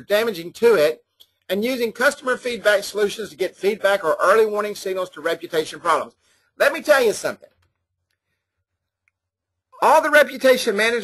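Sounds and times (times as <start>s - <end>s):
man speaking: 0.0s - 7.6s, 9.7s - 11.0s.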